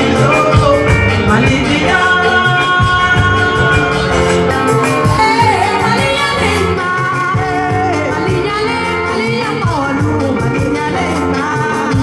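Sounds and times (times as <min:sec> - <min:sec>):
full band playing: 0:00.0 - 0:12.0
woman singing into a microphone: 0:00.0 - 0:12.0.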